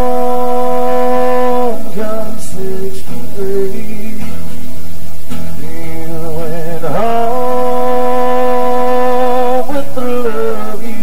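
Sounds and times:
man singing country song: 0.0 - 4.7, 5.3 - 11.0.

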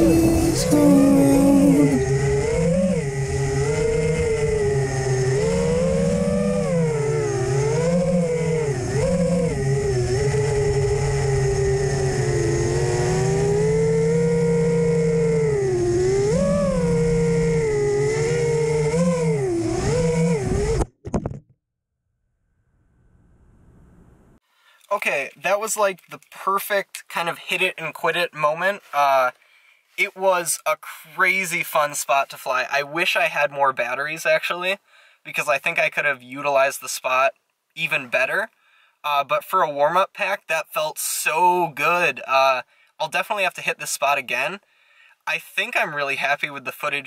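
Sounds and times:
drone motors whining: 0.0 - 20.9.

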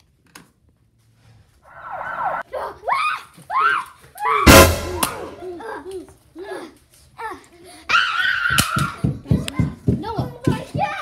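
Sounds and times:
child screaming: 2.3 - 4.5, 7.9 - 9.1.

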